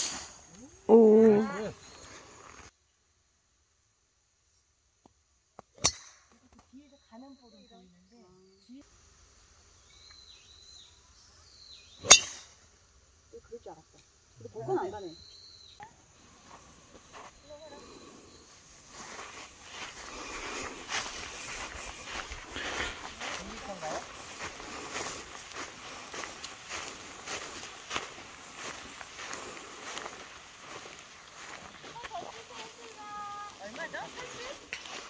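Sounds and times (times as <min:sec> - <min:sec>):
footsteps on grass: 0:16.2 - 0:35.0
frogs calling: 0:17.1 - 0:35.0.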